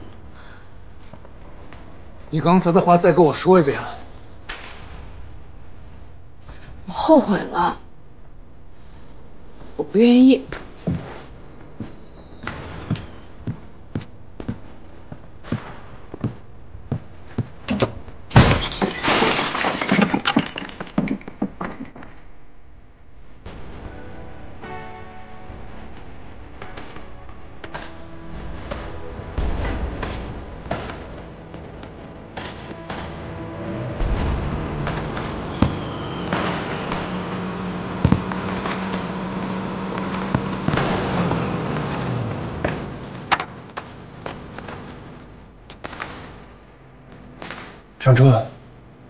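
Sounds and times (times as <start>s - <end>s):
fragments clattering: 18.3s - 22.3s
object shattering on hard floor: 18.4s - 22.2s
motorcycle engine running: 31.3s - 43.7s
fireworks popping and crackling: 34.0s - 46.5s.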